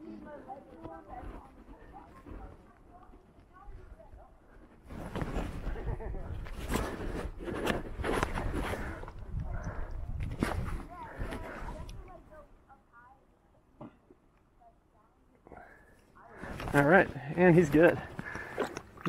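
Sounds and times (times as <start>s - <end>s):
water splashing and sloshing: 17.4s - 19.0s.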